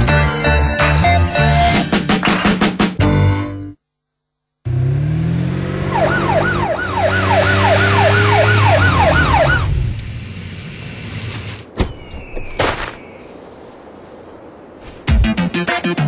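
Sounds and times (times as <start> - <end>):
music: 0.0 - 3.8, 15.1 - 16.0
siren cycling fast: 5.5 - 9.8.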